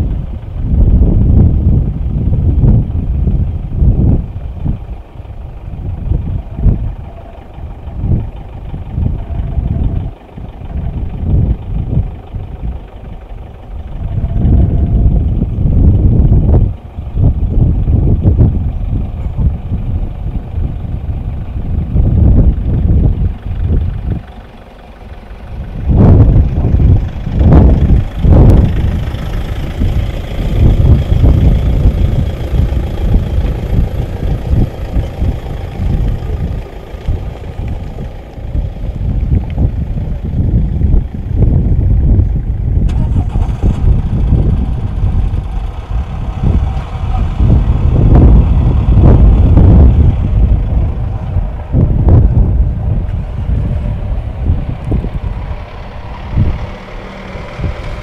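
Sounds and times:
vehicle engines idling: 0:00.0 - 0:58.0.

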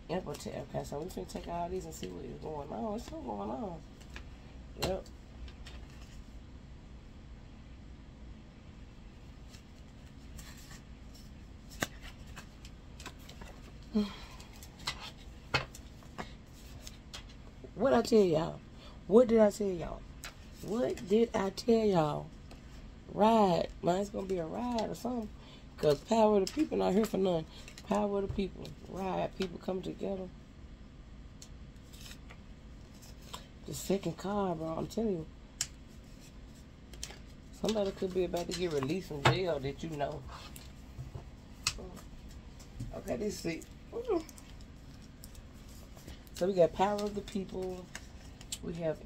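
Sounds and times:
low room hum: 0:00.0 - 0:49.0
playing cards rustling and sliding: 0:02.9 - 0:06.4, 0:09.2 - 0:18.2, 0:31.8 - 0:34.1, 0:35.7 - 0:43.6, 0:44.2 - 0:48.7
paper sheets rustling: 0:36.9 - 0:40.9, 0:44.2 - 0:48.5.

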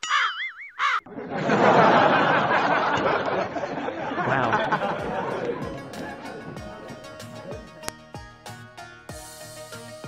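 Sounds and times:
man giggling: 0:03.5 - 0:06.4.

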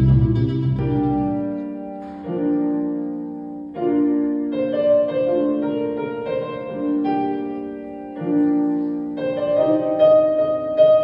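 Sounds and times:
electronic piano chords: 0:00.0 - 0:11.0.

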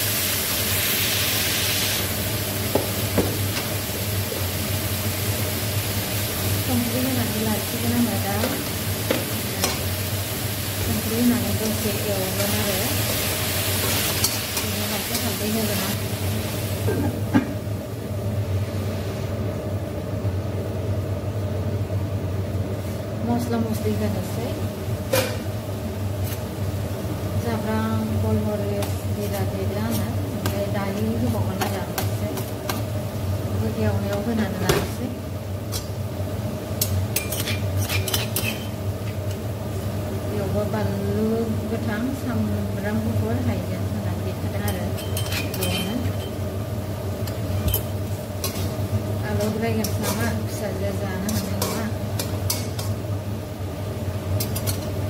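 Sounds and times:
chicken frying in a wok: 0:00.0 - 0:17.4, 0:23.7 - 0:55.0
steady low hum: 0:00.0 - 0:55.0
spoon clinking on metal: 0:44.7 - 0:46.4.

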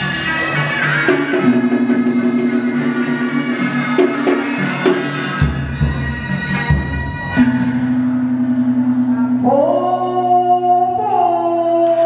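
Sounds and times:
drum strokes: 0:00.0 - 0:09.8.

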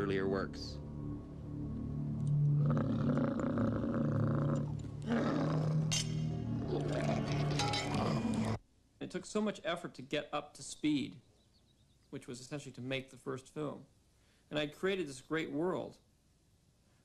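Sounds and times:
low orchestral drone: 0:00.0 - 0:08.6
monster roaring: 0:02.4 - 0:08.6.

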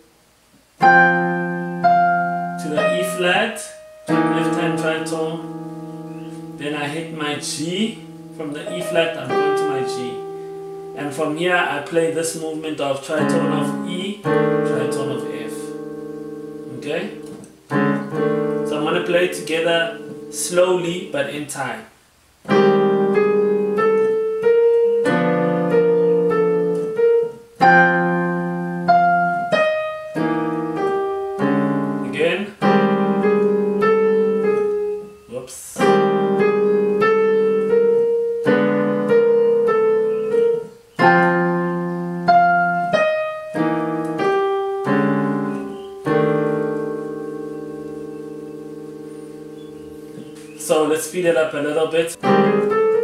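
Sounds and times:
piano chords: 0:00.0 - 0:21.8, 0:22.4 - 0:53.0.

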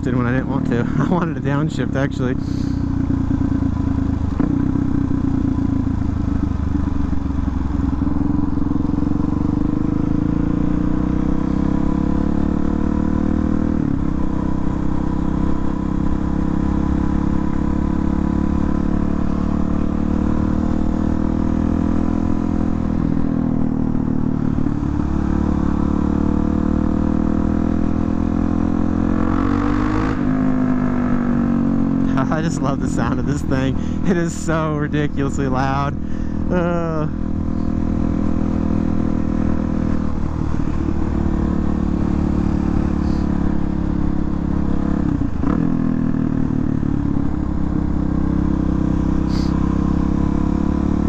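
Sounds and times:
loud motorcycle engine running: 0:00.0 - 0:51.0.

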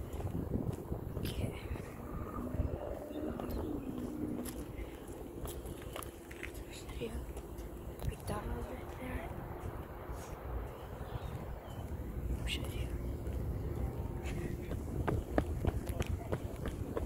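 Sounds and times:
traffic low rumble: 0:00.0 - 0:17.0
wind on microphone: 0:00.0 - 0:17.0
faint indistinct voices: 0:11.3 - 0:17.0.

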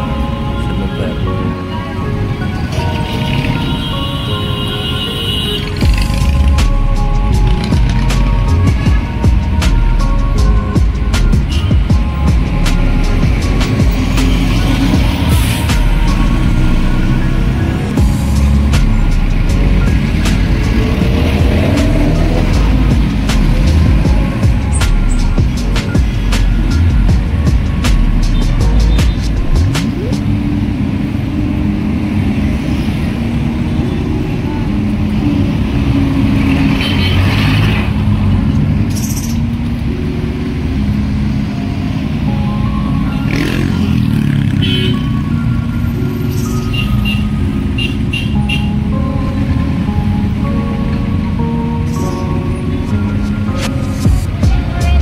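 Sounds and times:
background music: 0:00.0 - 0:55.0
vehicles passing: 0:00.0 - 0:55.0.

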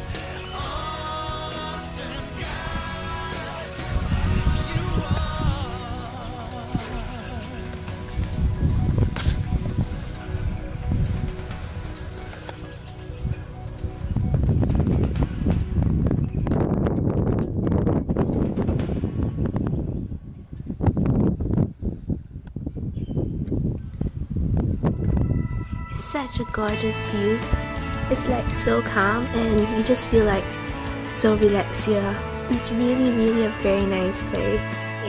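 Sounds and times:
background music with held notes: 0:00.0 - 0:20.4, 0:24.8 - 0:35.0
wind buffeting microphone: 0:02.4 - 0:12.5, 0:13.1 - 0:34.6.

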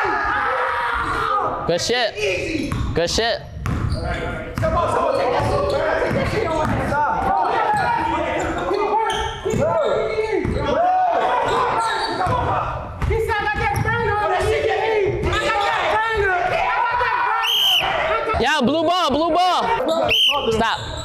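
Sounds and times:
echoing voices: 0:00.0 - 0:21.0
sneakers squeaking: 0:02.4 - 0:10.8, 0:11.4 - 0:13.1, 0:19.7 - 0:21.0.

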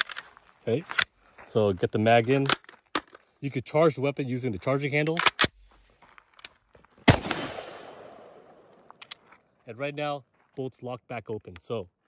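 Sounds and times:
rifle shot echoing: 0:07.1 - 0:08.9.

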